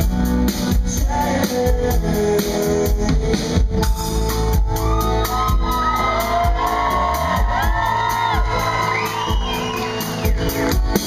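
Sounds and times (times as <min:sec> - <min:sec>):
live band playing: 0:00.0 - 0:11.0
audience whooping and shouting: 0:04.7 - 0:11.0.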